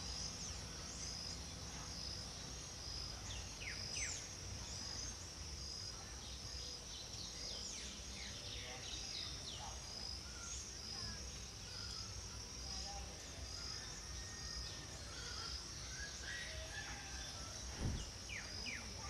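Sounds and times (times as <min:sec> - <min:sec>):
small birds chirping: 0:00.0 - 0:19.0.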